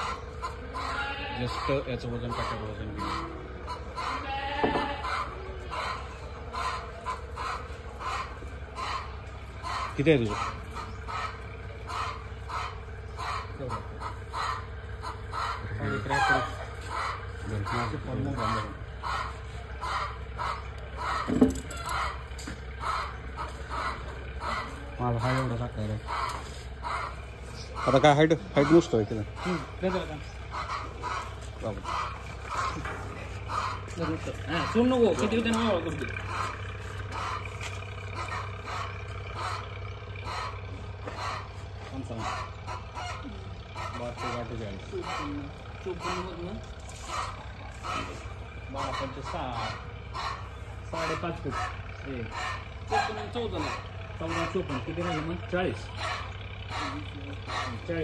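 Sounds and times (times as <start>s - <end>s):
goat bleating: 0.0s - 9.1s
goat calling: 0.0s - 58.0s.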